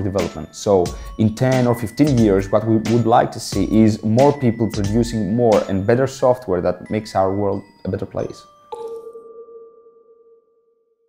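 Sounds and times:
chime-like electronic tone: 8.4s - 11.0s.

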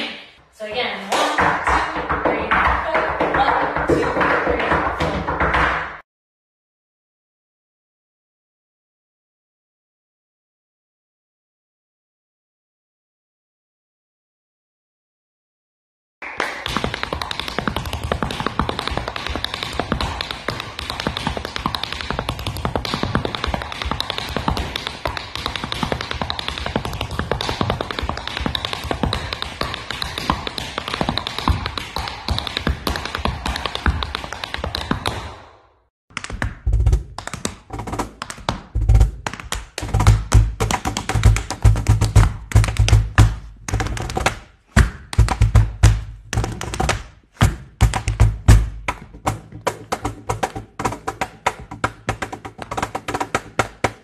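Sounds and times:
tap shoes on wooden floor: 0.6s - 6.0s, 16.6s - 35.4s, 36.1s - 54.0s
cajon bass strokes and slaps: 36.5s - 44.4s, 45.1s - 54.0s.

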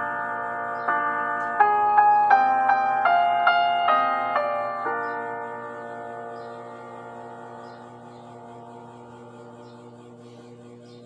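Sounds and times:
low electrical hum: 0.0s - 11.0s
piano chord ringing: 0.0s - 11.0s.

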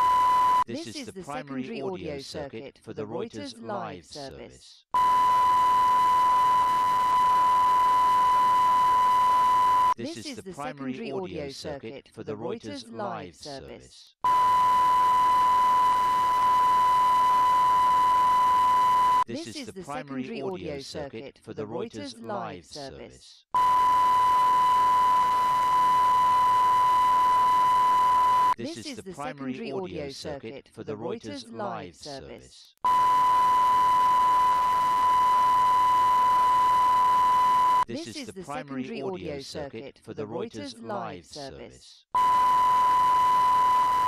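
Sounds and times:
steady test tone beep: 0.0s - 0.7s, 5.0s - 10.0s, 14.2s - 19.3s, 23.6s - 28.6s, 32.8s - 37.9s, 42.2s - 44.0s.

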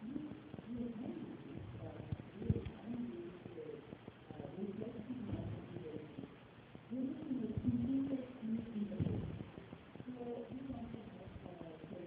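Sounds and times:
person lecturing: 0.0s - 12.0s.

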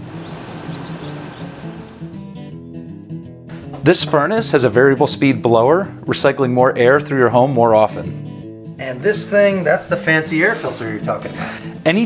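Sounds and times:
air conditioner fan rushing: 0.0s - 2.1s
background music with low tones: 0.0s - 12.0s.

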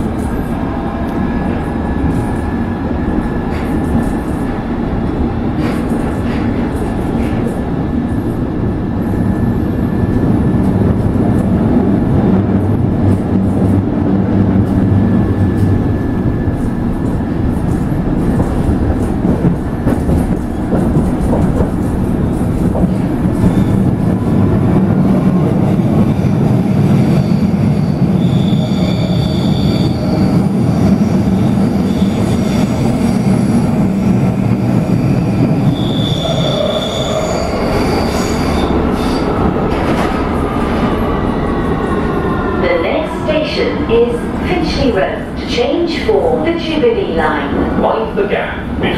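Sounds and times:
falling whine of train slowing: 0.0s - 45.6s
train rumbling through tunnel: 0.0s - 48.9s.

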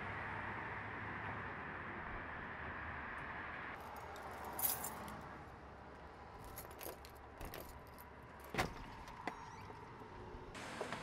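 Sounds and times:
keys jangling: 3.8s - 5.2s, 6.4s - 8.5s.

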